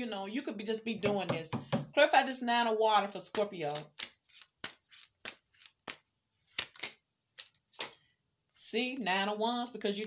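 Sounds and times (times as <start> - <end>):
cards being shuffled: 3.3 - 8.0.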